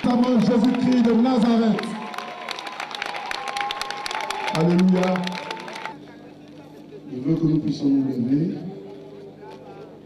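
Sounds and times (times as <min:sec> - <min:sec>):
crowd applauding: 0:00.0 - 0:06.0.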